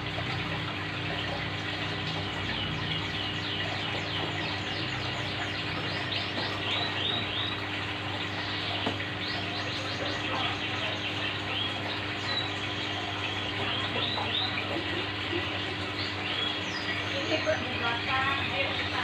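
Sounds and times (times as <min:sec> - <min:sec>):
aquarium air stone bubbling: 0:00.0 - 0:19.0
bird chirping: 0:02.3 - 0:19.0.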